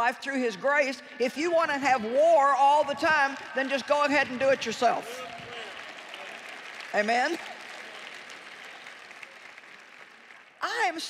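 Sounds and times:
light audience applause: 5.1s - 10.6s.

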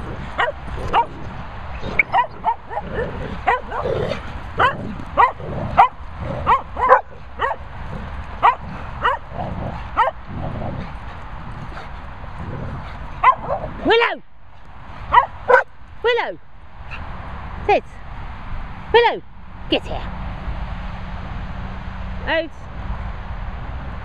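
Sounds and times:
dogs yipping and barking: 0.0s - 13.8s, 15.0s - 15.7s.

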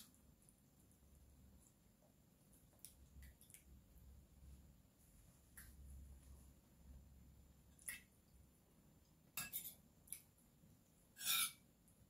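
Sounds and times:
cutlery scraping plate: 9.4s - 9.8s, 11.2s - 11.6s.

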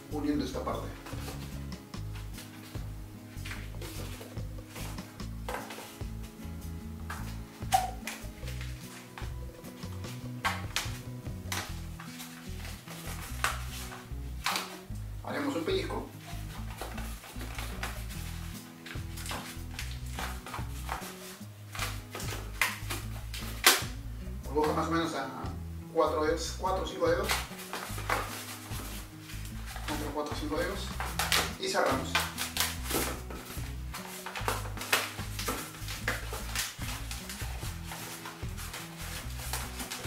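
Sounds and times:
background music low notes: 0.0s - 40.0s
balloon squeaking and rubbing: 7.6s - 9.2s, 16.1s - 23.9s, 27.2s - 40.0s.

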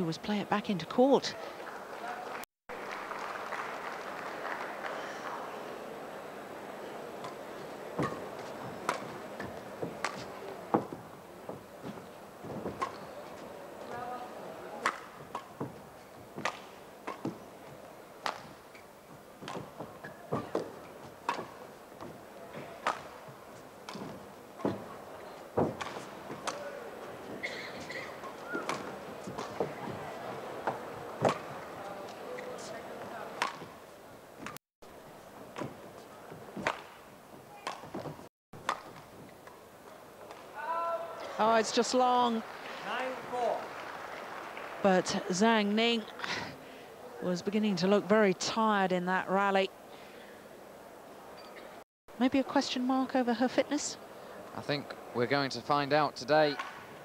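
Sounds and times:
faint murmur of a hall: 1.2s - 34.3s, 35.0s - 48.4s
racket striking shuttlecock: 7.2s - 11.6s, 12.6s - 13.3s, 14.8s - 15.8s, 16.4s - 17.5s, 18.2s - 18.7s, 19.4s - 26.9s, 28.0s - 32.6s, 33.4s - 33.8s, 35.5s - 39.6s, 56.5s - 56.9s.

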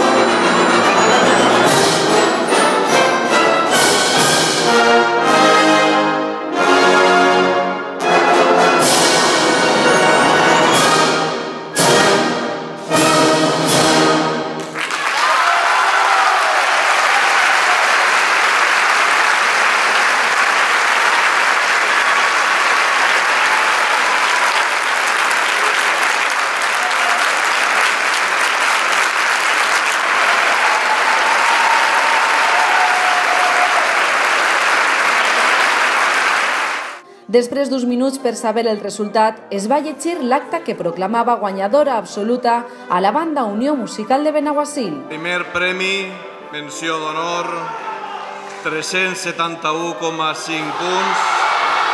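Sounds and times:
wind band brass chords: 0.0s - 14.8s
audience applause: 14.6s - 37.0s, 50.4s - 51.9s.

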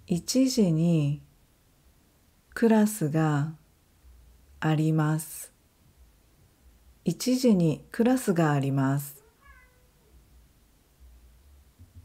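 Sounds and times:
cat meowing: 9.1s - 10.2s.

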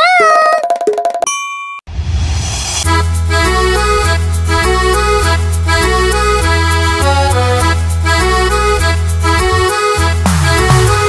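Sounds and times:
clear ding: 1.3s - 1.8s.

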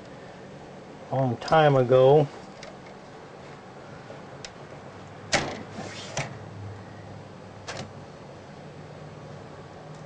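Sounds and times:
short rustle: 5.7s - 6.3s.

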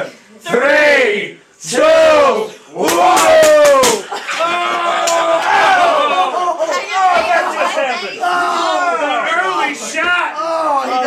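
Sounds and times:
group shouting in unison: 0.5s - 9.3s
excited shouting and yelling: 0.5s - 11.0s.

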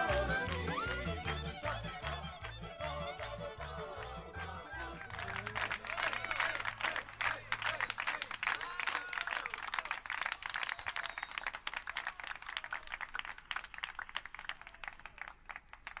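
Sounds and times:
voices cheering: 0.0s - 12.4s
audience applause: 0.0s - 16.0s.

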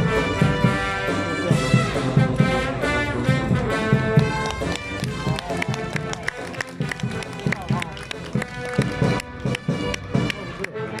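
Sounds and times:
brass band playing: 0.0s - 11.0s
people's voices: 0.1s - 11.0s.

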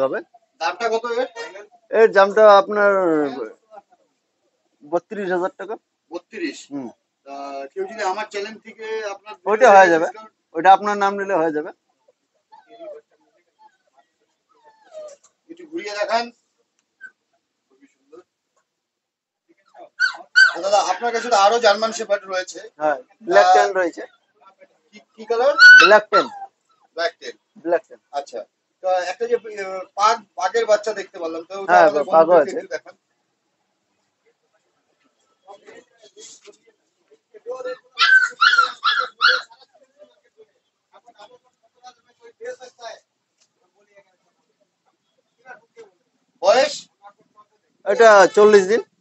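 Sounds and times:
puppy whimpering: 14.6s - 15.3s, 20.0s - 20.7s, 25.5s - 26.5s, 37.8s - 39.6s.

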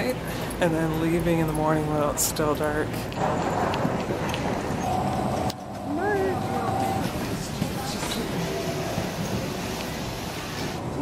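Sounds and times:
steady mid-pitched hum: 4.8s - 7.6s.

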